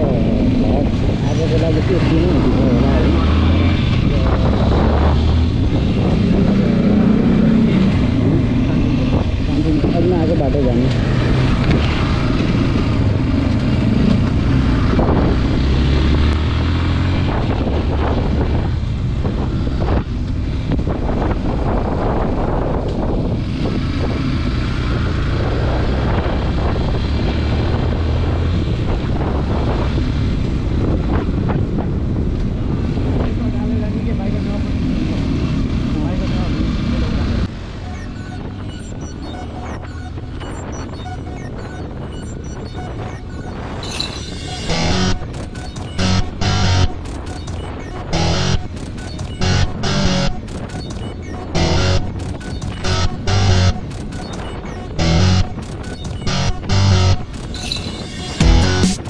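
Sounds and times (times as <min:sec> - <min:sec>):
wind rushing over microphone: 0:00.0 - 0:33.6.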